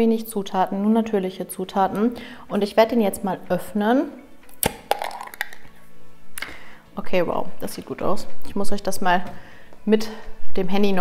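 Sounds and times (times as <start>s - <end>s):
jar lid clicks: 4.5s - 5.7s
jar lid cracking open: 4.5s - 5.7s.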